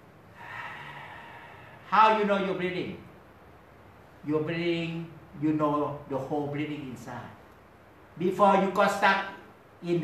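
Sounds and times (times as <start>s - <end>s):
man breathing: 0.2s - 1.9s.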